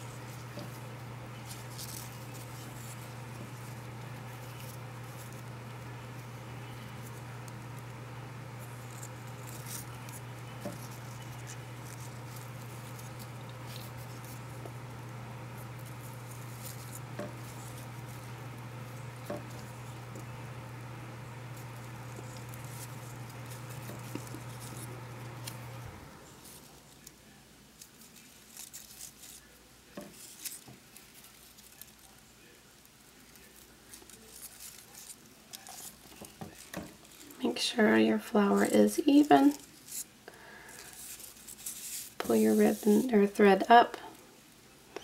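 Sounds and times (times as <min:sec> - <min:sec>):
ribbon rustling and clicking: 0:00.0 - 0:27.2, 0:27.8 - 0:32.2, 0:33.2 - 0:37.5, 0:38.4 - 0:43.3
steady low hum: 0:00.0 - 0:27.4.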